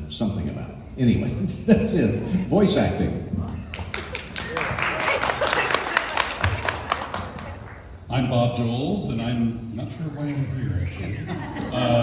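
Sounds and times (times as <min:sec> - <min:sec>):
many hands clapping: 0:03.7 - 0:07.9
laughter: 0:10.8 - 0:12.0.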